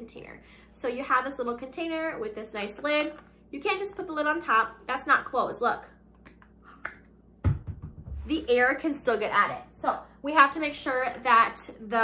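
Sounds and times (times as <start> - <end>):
heavy thump: 7.4 - 8.4.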